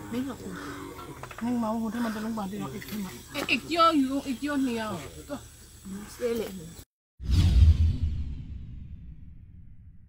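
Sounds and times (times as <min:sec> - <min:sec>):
deep boom: 0:07.2 - 0:10.0.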